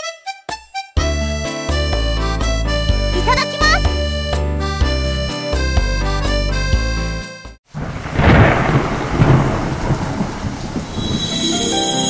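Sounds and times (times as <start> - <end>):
music: 0.0 - 7.6, 11.2 - 12.0
thunder crack and rumble: 7.7 - 11.8.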